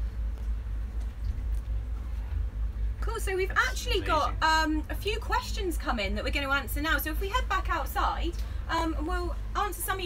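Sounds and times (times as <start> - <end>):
boat machinery rumble: 0.0 - 10.0.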